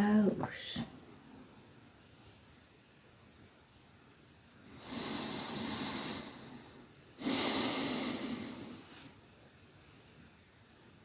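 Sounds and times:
person breathing deeply: 4.7 - 9.2.

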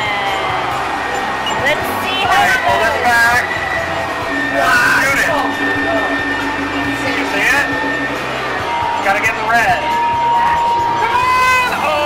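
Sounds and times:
electronic arcade game music: 0.0 - 12.0.

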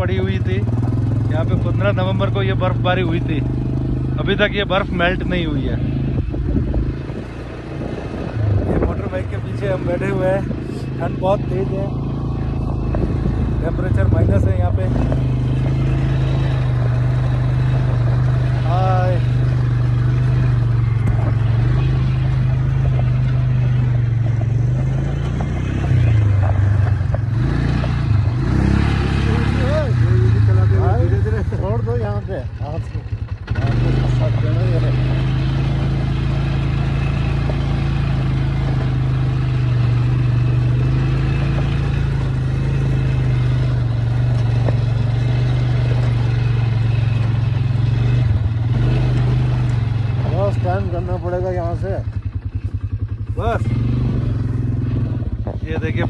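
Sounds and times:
small vehicle engine running: 0.0 - 56.0.

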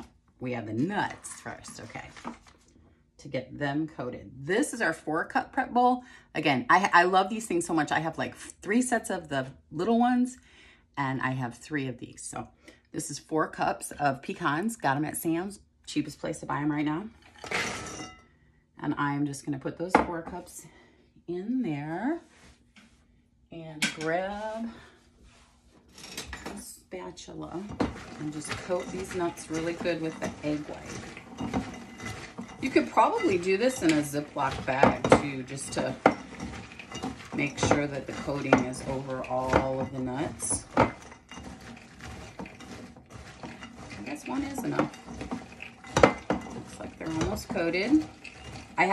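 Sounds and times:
spatula stirring nuts in bowl: 17.2 - 18.2, 27.2 - 48.9.

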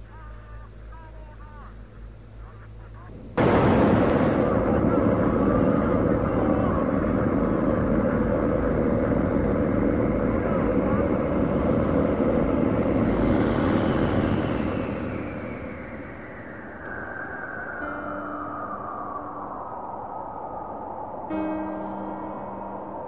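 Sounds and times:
aircraft drone: 0.0 - 23.0
thin falling whine: 1.6 - 23.0.

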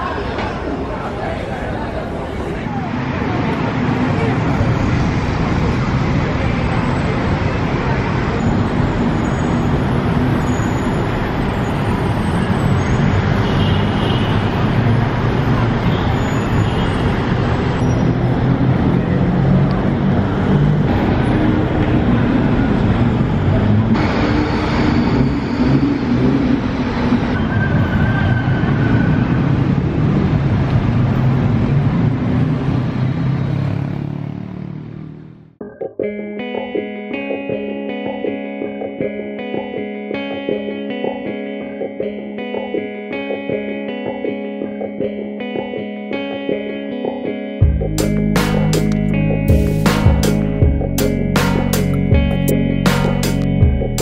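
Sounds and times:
busy road traffic: 0.0 - 54.0.

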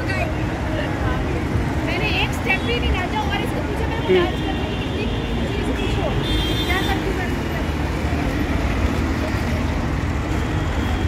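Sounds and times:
road traffic rumble: 0.0 - 11.0.

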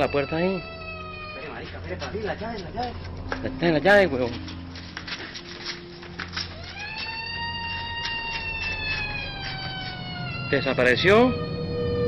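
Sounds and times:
long high wail: 0.0 - 1.6, 6.5 - 12.0.

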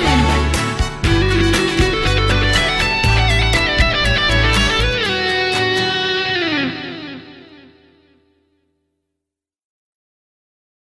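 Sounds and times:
electric guitar music: 0.0 - 8.8.

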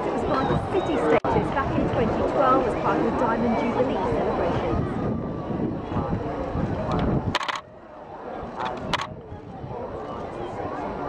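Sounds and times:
people talking: 0.0 - 7.5
sharp clicks: 7.4 - 7.6, 8.6 - 9.1.

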